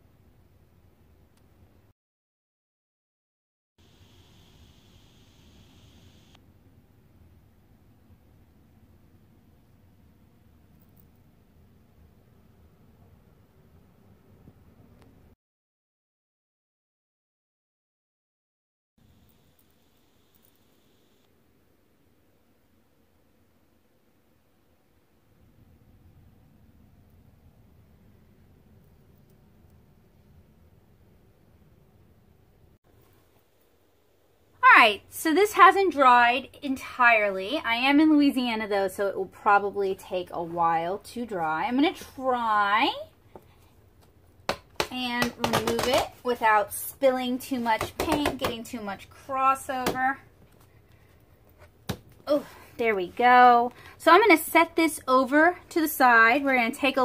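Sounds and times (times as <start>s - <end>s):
light hiss: 3.8s - 6.4s.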